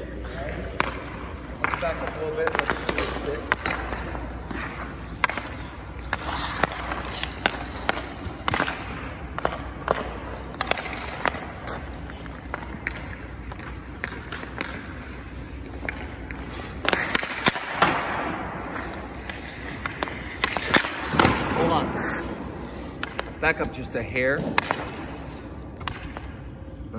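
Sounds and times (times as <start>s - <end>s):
skates scraping on ice: 0.0s - 26.9s
hockey stick hitting pucks: 0.5s - 26.5s.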